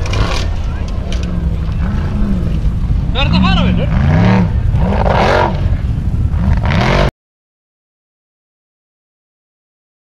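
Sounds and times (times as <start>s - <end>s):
racing buggy engine revving: 0.0s - 7.1s
wheels spinning on rough ground: 0.0s - 7.1s.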